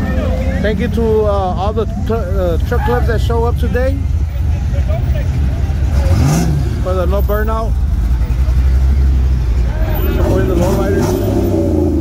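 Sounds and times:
pickup truck engine rumbling: 0.0s - 12.0s.

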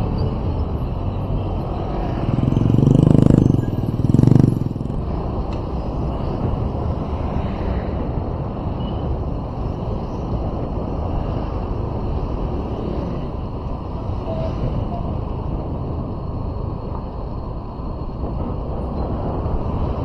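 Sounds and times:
car engine and road rumble: 0.0s - 20.0s.

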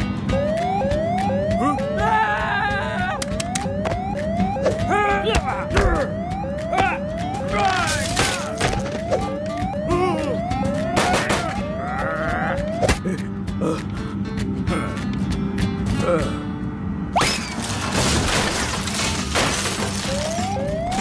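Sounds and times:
cartoon siren whoop: 0.3s - 13.0s, 20.0s - 21.0s.

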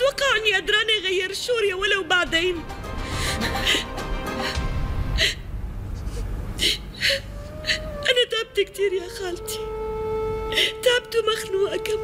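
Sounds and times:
soft background music: 0.0s - 5.4s, 7.0s - 12.0s
woman crying with gasping sobs: 3.0s - 5.5s, 6.1s - 8.2s.

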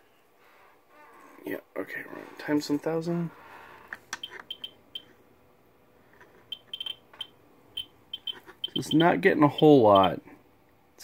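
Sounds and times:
geiger counter clicks: 6.5s - 10.2s.

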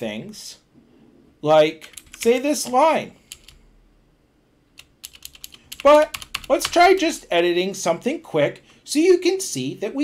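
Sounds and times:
keyboard keys clicking: 1.8s - 3.6s, 4.8s - 7.0s.

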